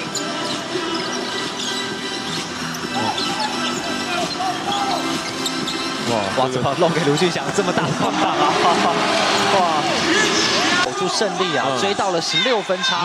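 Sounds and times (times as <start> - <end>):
music in a basketball arena: 0.0 - 13.0.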